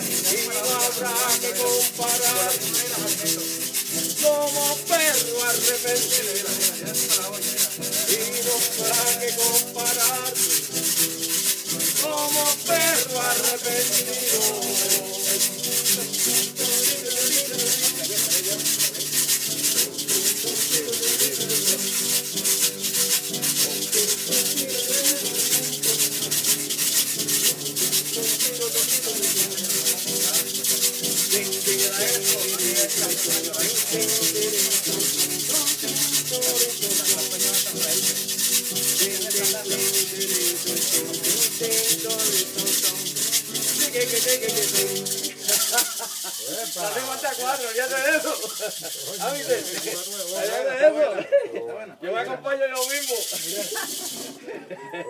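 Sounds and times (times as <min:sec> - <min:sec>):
acoustic guitar melody: 0:00.0 - 0:55.0
guiro scraping rhythm: 0:00.0 - 0:55.0.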